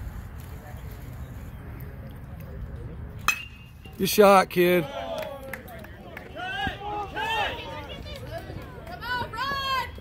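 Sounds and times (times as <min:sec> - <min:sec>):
metal bat striking ball: 0:03.2 - 0:03.9.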